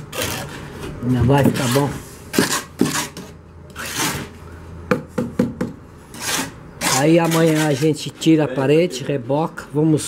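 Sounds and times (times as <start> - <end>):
trowel scraping cement on block: 0.0 - 4.4, 6.1 - 8.4.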